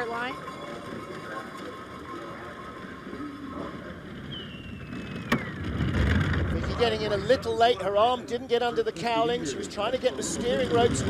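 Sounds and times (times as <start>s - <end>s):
bobsleigh runners rushing on ice: 0.0s - 8.0s, 9.8s - 11.0s
thin falling whistle: 4.3s - 5.6s.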